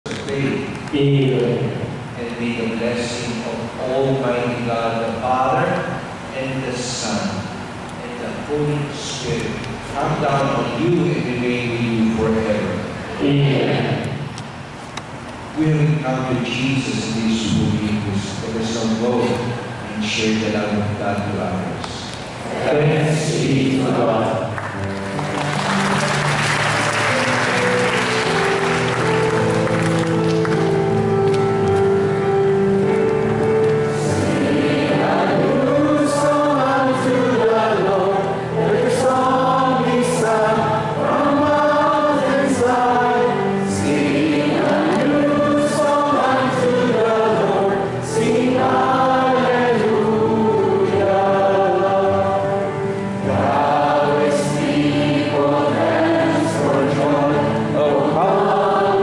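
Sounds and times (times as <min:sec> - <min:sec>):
church choir singing a hymn: 0:01.2 - 0:14.3, 0:15.6 - 0:21.0, 0:22.4 - 0:59.0.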